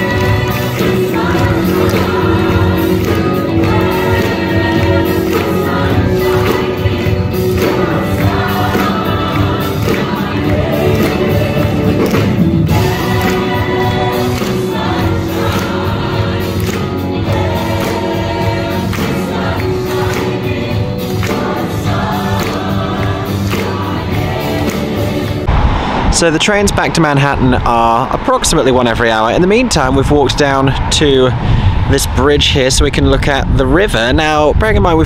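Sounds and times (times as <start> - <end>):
cast singing in chorus: 0.0 - 25.5.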